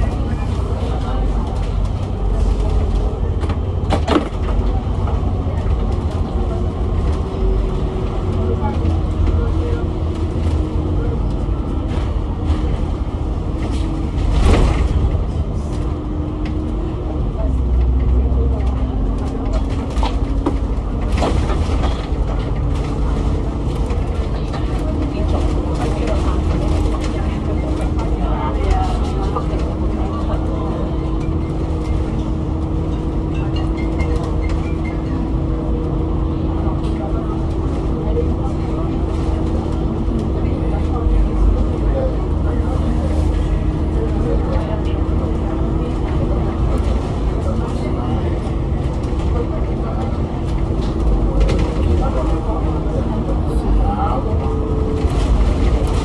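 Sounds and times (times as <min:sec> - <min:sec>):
bus interior rumble: 0:00.0 - 0:56.0.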